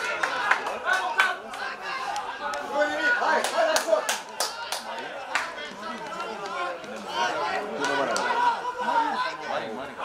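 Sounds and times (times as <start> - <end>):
people calling and chattering: 0.0 - 10.0
hand claps: 3.4 - 7.0.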